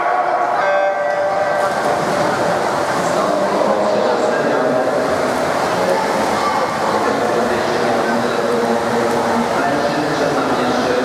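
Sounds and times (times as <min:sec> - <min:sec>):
voices echoing in pool hall: 0:00.0 - 0:11.0
water splashing: 0:00.0 - 0:11.0.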